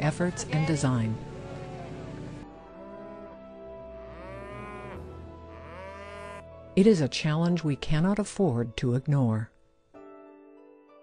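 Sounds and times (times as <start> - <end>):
soft background music: 0.0 - 11.0
cattle mooing: 3.0 - 6.5.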